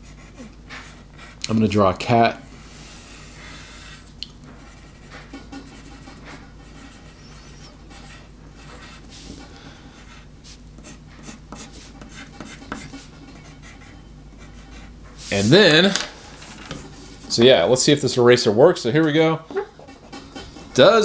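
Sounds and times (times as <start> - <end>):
pencil scratching on paper: 0.0 - 1.4, 4.5 - 15.6.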